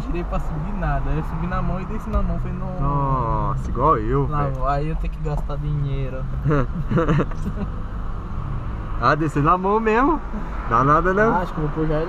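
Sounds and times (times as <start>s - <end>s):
car engine and road hum: 0.0s - 12.0s
person laughing: 6.4s - 7.7s.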